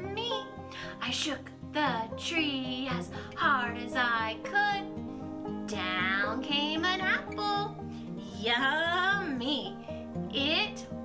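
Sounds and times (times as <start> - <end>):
woman singing a nursery rhyme: 0.0 - 10.9
light instrumental backing music: 0.0 - 11.0.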